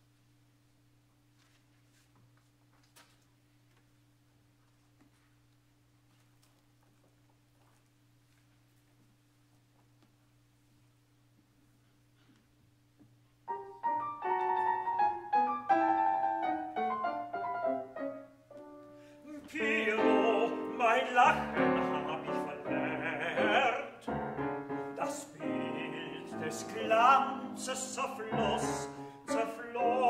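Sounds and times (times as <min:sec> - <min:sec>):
grand piano playing: 0:13.5 - 0:30.0
baritone voice singing with vibrato: 0:19.2 - 0:30.0.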